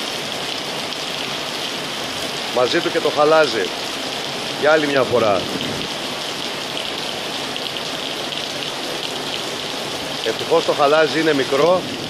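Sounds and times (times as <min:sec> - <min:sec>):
rain and hail on paving stones: 0:00.0 - 0:12.0.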